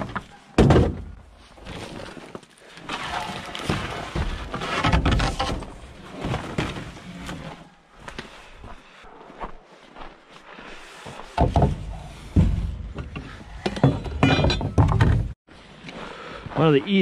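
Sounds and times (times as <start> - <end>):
wooden knocks and thumps: 0.0 - 1.2, 3.6 - 5.8, 11.4 - 15.4.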